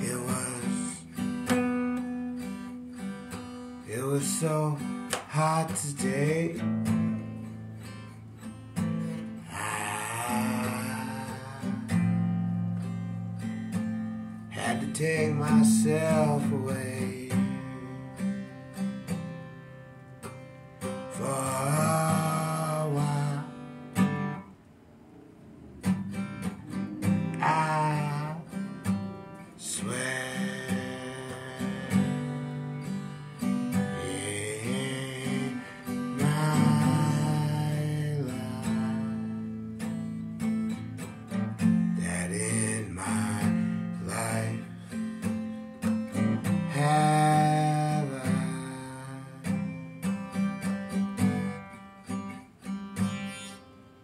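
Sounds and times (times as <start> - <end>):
man singing: 0.0 - 1.5, 3.8 - 7.2, 9.4 - 12.8, 14.4 - 18.6, 20.9 - 24.4, 27.0 - 39.8, 41.6 - 45.4, 46.1 - 49.8
acoustic guitar accompaniment: 0.0 - 54.0.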